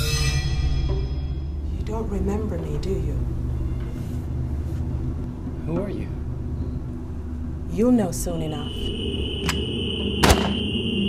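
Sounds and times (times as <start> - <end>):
steady high-pitched tone: 0.0 - 11.0
low rumble: 0.2 - 11.0.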